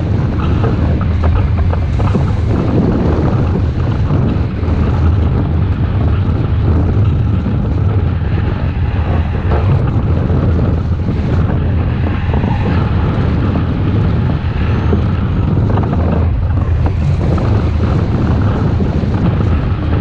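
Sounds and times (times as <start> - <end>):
wind rushing over microphone: 0.0 - 20.0.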